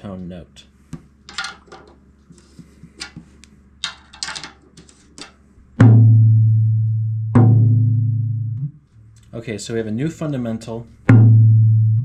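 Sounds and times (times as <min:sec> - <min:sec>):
low drum strikes: 0:05.8 - 0:08.8, 0:11.0 - 0:12.0.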